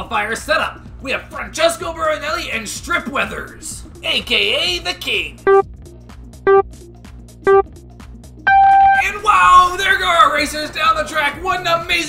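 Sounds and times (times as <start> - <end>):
background music with ticking beat: 0.0 - 12.0
countdown beeps: 5.5 - 5.7, 6.5 - 6.7, 7.5 - 7.7, 8.5 - 9.1.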